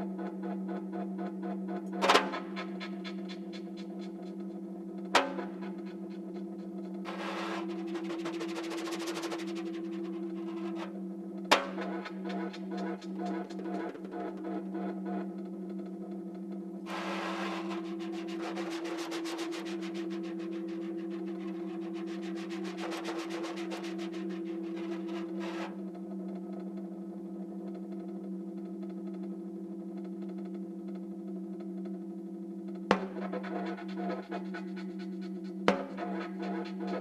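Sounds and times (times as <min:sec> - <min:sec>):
low two-tone drone: 0:00.0 - 0:37.0.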